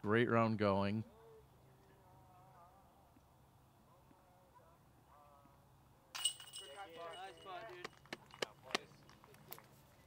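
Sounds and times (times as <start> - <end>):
voices: 0.0 - 9.7
metal chains jangling: 6.2 - 7.6.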